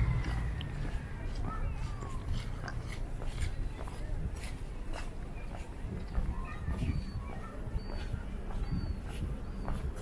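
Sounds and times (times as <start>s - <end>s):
steady low rumble: 0.0s - 7.3s
footsteps on pavement: 0.0s - 10.0s.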